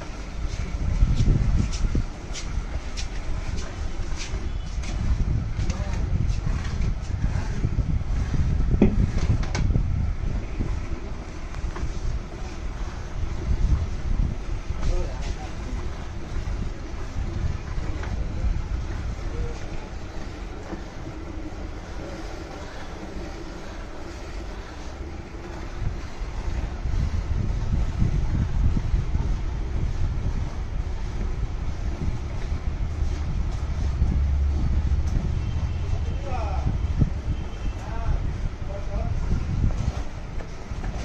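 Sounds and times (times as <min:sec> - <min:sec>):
wind rumble: 0:00.0 - 0:22.2, 0:23.2 - 0:41.0
microphone handling noise: 0:00.4 - 0:12.7, 0:26.7 - 0:41.0.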